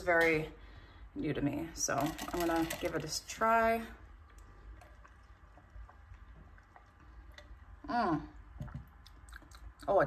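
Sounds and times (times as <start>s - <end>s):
ice cubes shifting: 1.9s - 3.3s.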